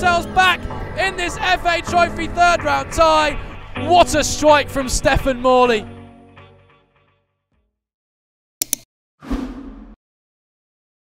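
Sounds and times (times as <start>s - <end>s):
sharp clicks: 8.6s - 8.9s
whoosh: 9.2s - 10.0s.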